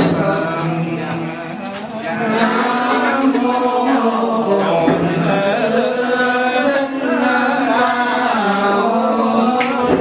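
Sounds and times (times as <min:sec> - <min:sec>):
men chanting in held notes: 0:00.0 - 0:10.0.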